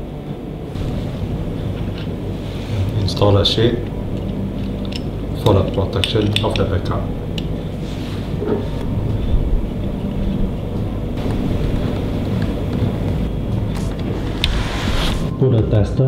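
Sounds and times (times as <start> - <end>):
steady low rumble: 0.0 - 15.9.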